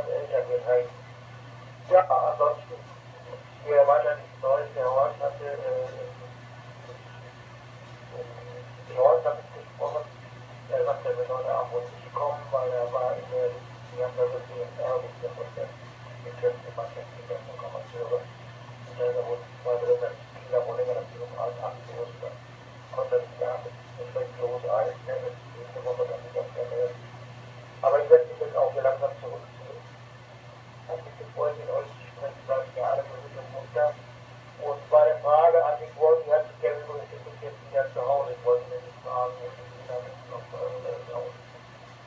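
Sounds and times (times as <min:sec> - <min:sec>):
person talking over radio: 0:00.0 - 0:01.0, 0:01.9 - 0:06.3, 0:08.1 - 0:10.1, 0:10.7 - 0:18.3, 0:18.9 - 0:27.0, 0:27.8 - 0:29.8, 0:30.9 - 0:34.0, 0:34.6 - 0:41.4
steady low hum: 0:00.0 - 0:42.0.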